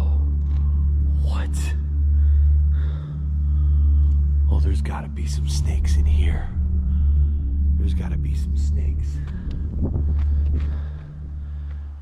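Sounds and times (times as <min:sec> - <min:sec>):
deep hum: 0:00.0 - 0:12.0
low rumble: 0:00.0 - 0:12.0.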